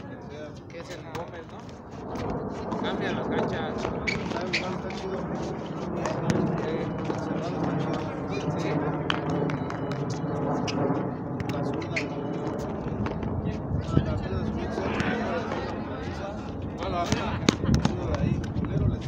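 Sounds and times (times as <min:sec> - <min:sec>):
indistinct talking: 0:02.3 - 0:18.1.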